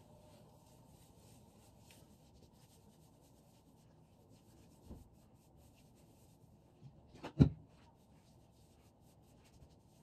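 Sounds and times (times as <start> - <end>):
hands rubbing foam through hair: 0.0 - 6.8, 7.6 - 10.0.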